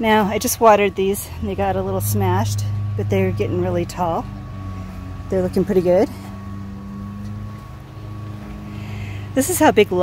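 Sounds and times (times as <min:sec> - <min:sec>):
faint thin whine: 0:00.0 - 0:10.0
low mechanical hum: 0:00.0 - 0:10.0.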